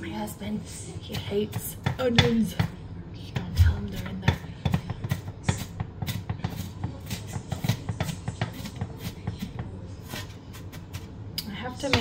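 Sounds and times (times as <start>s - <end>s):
knife chopping onion on board: 1.1s - 11.1s.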